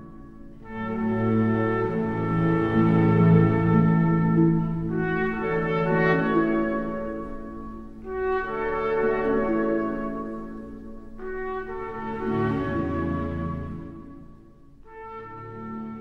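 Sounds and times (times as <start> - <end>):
orchestral brass music: 0.0 - 16.0.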